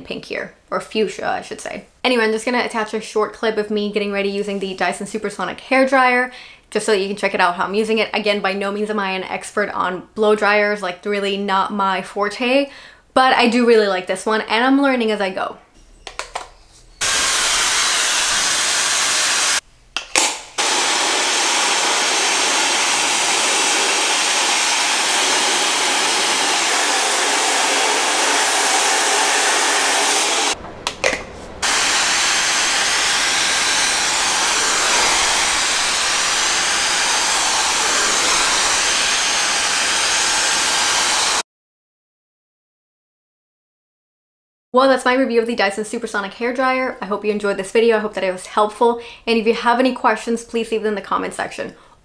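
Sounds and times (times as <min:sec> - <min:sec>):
hair dryer blowing: 0:17.0 - 0:19.6, 0:20.2 - 0:41.4.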